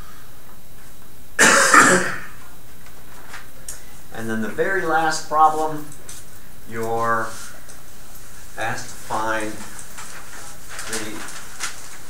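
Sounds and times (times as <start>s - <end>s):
person coughing: 1.4s - 2.4s.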